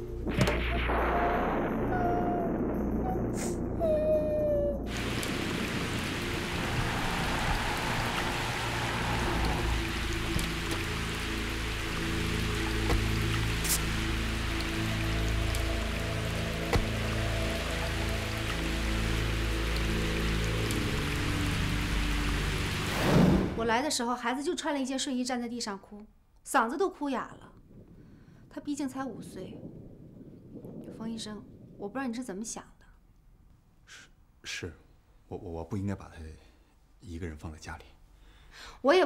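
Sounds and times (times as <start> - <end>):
background music: 0.0 - 24.2
heavy rain hissing: 4.9 - 23.7.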